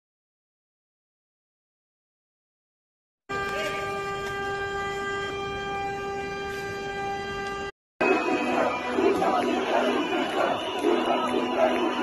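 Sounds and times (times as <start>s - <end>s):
vehicle horn sounding: 3.3s - 12.0s
crowd shouting: 8.0s - 12.0s.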